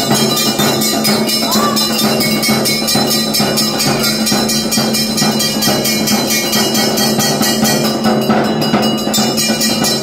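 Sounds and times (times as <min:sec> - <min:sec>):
percussion: 0:00.0 - 0:10.0
steady held tone: 0:00.0 - 0:10.0
temple bells ringing: 0:00.0 - 0:10.0.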